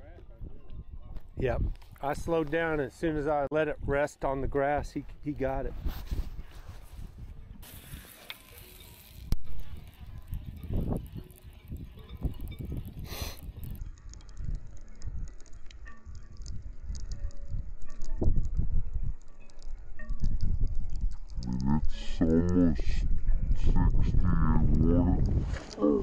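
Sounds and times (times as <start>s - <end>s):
wind rumbling on microphone: 0.0s - 2.8s, 3.7s - 26.0s
fishing reel clicks and ticks: 7.6s - 15.9s.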